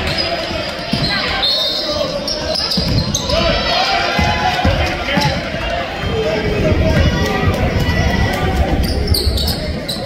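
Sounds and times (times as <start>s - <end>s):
crowd voices: 0.0s - 10.0s
basketball bouncing on court: 2.3s - 3.4s.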